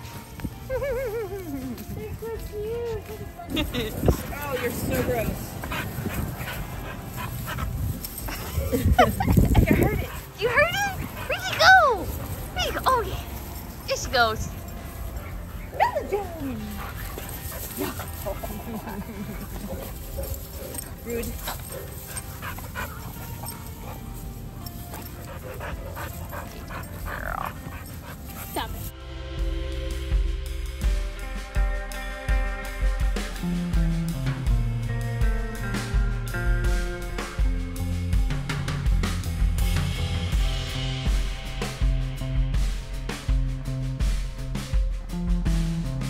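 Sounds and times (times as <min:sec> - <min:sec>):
rustling: 0:00.0 - 0:28.9
dogs playing: 0:00.0 - 0:29.0.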